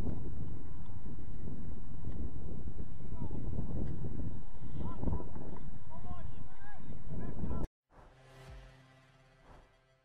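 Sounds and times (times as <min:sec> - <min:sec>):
wind rumbling on microphone: 0:00.0 - 0:07.7.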